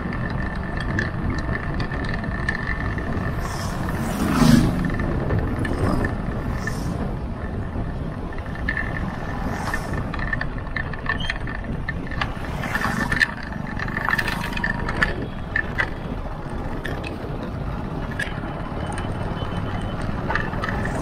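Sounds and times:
rattles and clicks: 0.0 - 21.0
vehicle road rumble: 0.0 - 21.0.

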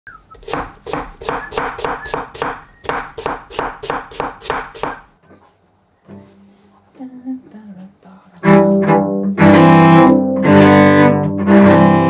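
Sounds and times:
sharp knocks: 0.4 - 5.1.

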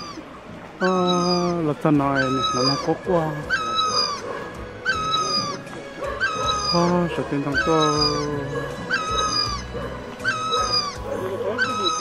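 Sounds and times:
animal high clear call: 0.0 - 12.0.

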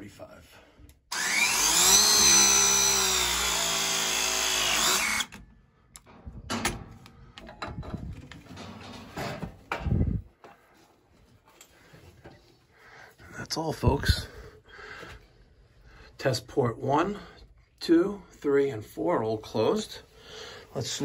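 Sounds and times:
press tool motor whine: 1.1 - 5.4.

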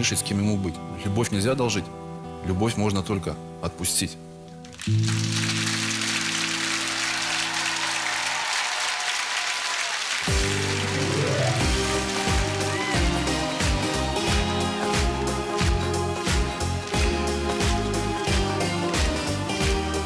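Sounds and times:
audience applauding: 4.7 - 20.0
song intro with steady beat: 10.3 - 20.0.

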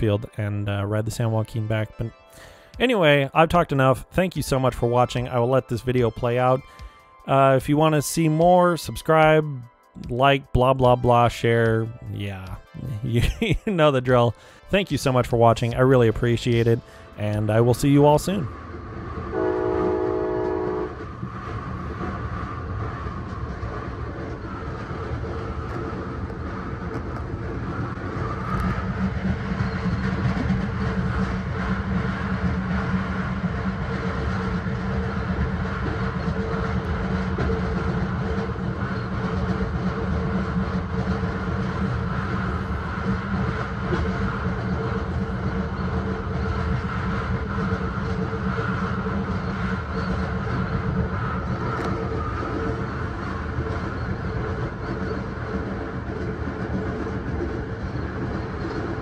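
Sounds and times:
train rolling rumble: 0.0 - 59.0
train horn: 19.3 - 21.2.

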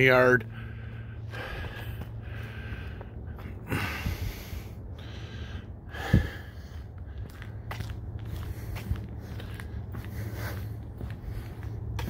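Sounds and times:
person breathing close to microphone: 0.5 - 12.0.

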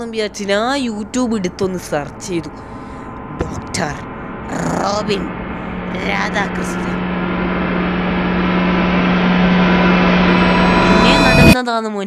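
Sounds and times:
low hum: 0.0 - 11.6
steady rushing drone: 0.0 - 11.6.

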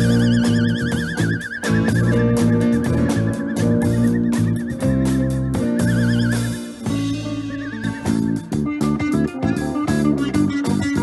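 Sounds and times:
bass guitar: 0.0 - 11.0
drum kit: 0.0 - 11.0
electric guitars: 0.0 - 11.0
high wavering lead guitar line: 0.0 - 11.0.

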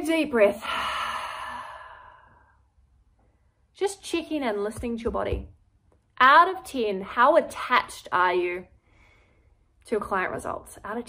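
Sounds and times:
woman breathing out deeply: 0.6 - 2.6.

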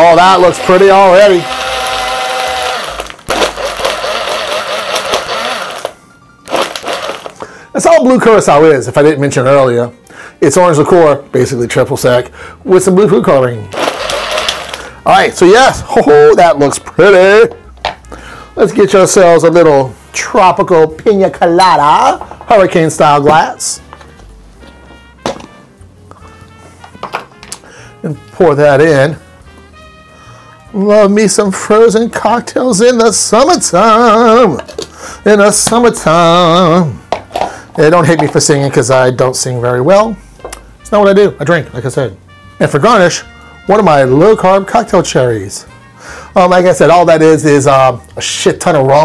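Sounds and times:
blender motor crushing ice: 0.0 - 7.4, 13.7 - 14.9
soft background music: 0.0 - 49.0.

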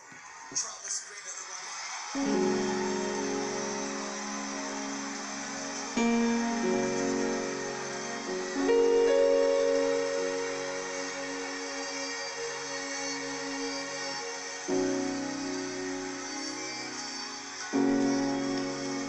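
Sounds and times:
piano playing slow chords: 2.2 - 19.0.

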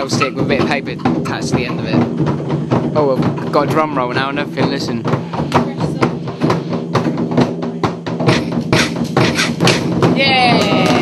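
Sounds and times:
low ringing tones: 0.0 - 1.5
drum roll: 0.0 - 11.0.

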